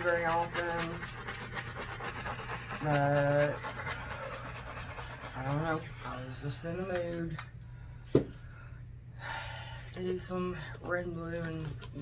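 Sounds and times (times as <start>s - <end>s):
plastic scratching on wet paint: 0.0s - 7.2s
low steady hum: 0.0s - 12.0s.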